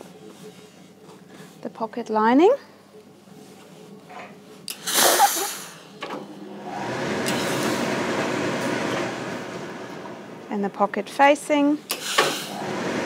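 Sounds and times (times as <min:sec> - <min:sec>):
steam iron hissing: 0:06.6 - 0:10.0, 0:11.9 - 0:13.0.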